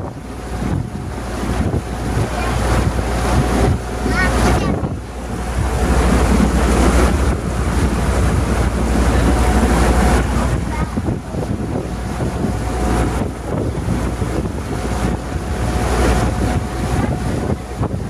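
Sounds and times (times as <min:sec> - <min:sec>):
steady low rumble: 0:00.0 - 0:18.0
water rushing past hull: 0:00.0 - 0:18.0
wind buffeting microphone: 0:00.0 - 0:18.0.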